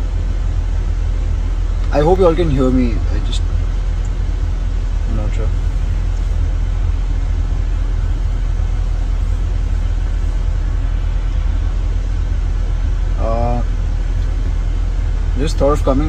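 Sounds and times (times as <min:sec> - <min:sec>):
car cabin rumble: 0:00.0 - 0:16.0.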